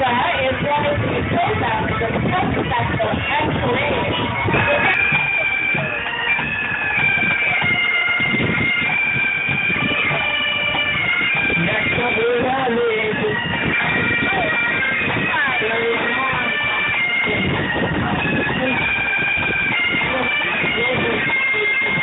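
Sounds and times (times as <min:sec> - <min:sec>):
bagpipes playing a tune: 0:00.0 - 0:22.0
drums beating: 0:00.0 - 0:22.0.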